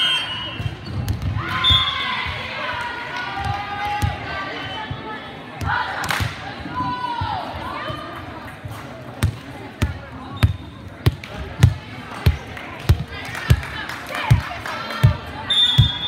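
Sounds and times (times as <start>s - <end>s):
referee's whistle: 0.0s - 0.9s, 1.6s - 2.3s, 15.4s - 16.0s
background chatter: 0.0s - 16.0s.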